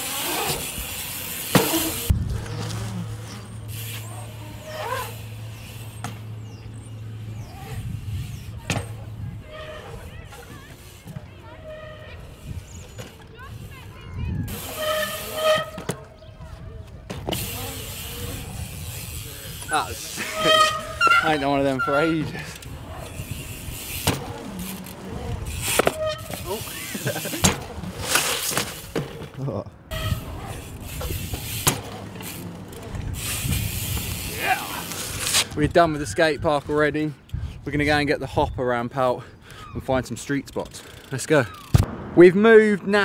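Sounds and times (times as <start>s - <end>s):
bike tyres rolling on concrete: 0.0s - 41.9s
bike landing knock: 1.5s - 2.8s, 8.6s - 9.0s, 24.0s - 24.6s, 27.4s - 29.4s, 31.3s - 32.2s.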